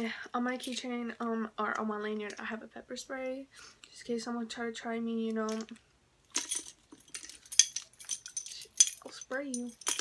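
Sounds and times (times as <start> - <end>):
metal keys jingling: 6.3 - 10.0.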